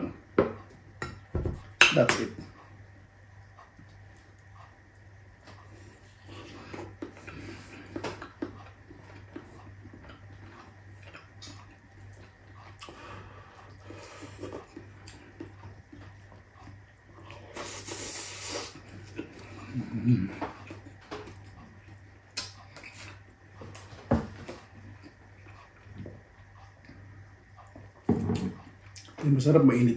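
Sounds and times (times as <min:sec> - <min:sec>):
steady low hum: 0:00.0 - 0:29.9
chewing with wet mouth smacks: 0:03.4 - 0:23.9, 0:24.5 - 0:29.2.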